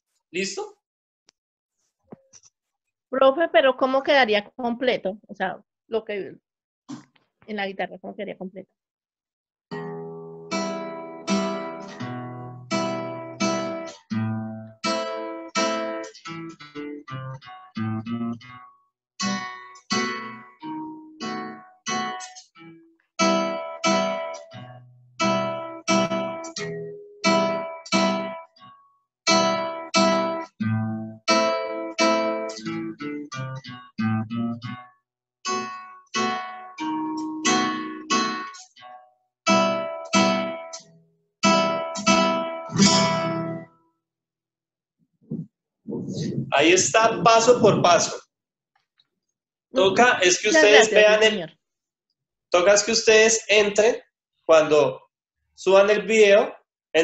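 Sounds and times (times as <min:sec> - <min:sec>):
strummed nylon-string guitar: 0:09.7 - 0:43.8, 0:49.8 - 0:51.3.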